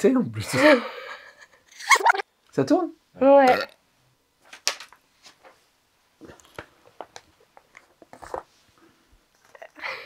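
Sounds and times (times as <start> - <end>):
paper rustling and crinkling: 6.2 - 8.7.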